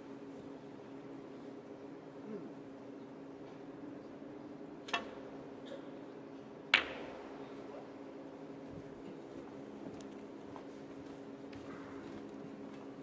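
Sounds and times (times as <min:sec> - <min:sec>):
low steady hum: 0:00.0 - 0:13.0
snooker balls colliding click: 0:06.8 - 0:07.2.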